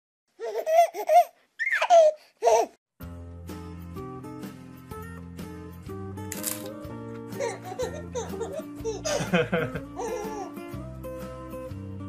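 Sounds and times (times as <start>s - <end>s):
baby squealing: 0.4s - 2.7s, 7.4s - 9.0s, 10.0s - 10.6s
baby giggling: 0.4s - 2.8s, 7.4s - 10.7s.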